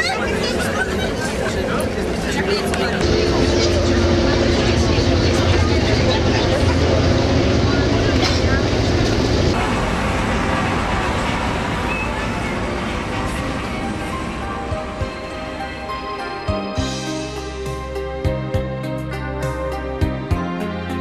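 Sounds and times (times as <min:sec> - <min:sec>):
bus engine and road noise: 0:00.0 - 0:18.3
low drone: 0:02.9 - 0:20.1.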